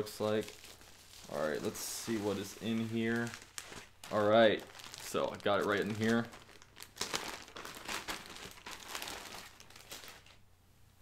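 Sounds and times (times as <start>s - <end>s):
plastic wrapping crinkling: 0.0s - 10.4s.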